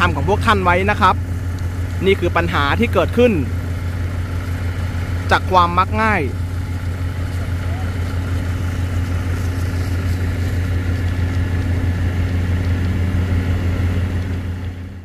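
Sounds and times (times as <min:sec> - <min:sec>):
engine idling: 0:00.0 - 0:15.0.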